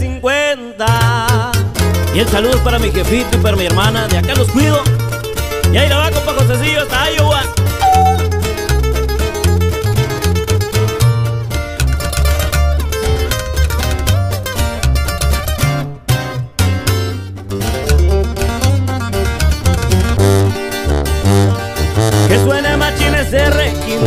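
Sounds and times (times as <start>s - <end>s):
strummed guitar: 0.9s - 24.0s
deep bass line: 1.0s - 24.0s
fast picked guitar lead: 1.8s - 24.0s.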